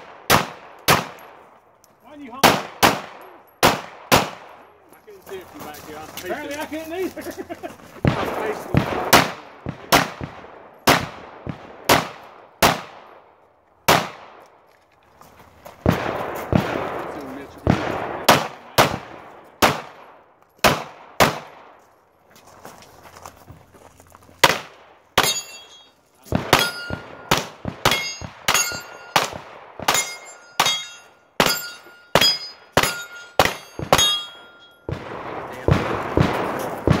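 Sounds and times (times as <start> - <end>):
gunshots with echo: 2.3 - 4.6, 8.0 - 13.2, 13.9 - 14.4, 15.8 - 21.7, 24.4 - 25.7, 26.3 - 37.0
ringing ping of steel targets: 25.2 - 27.3, 27.9 - 34.9.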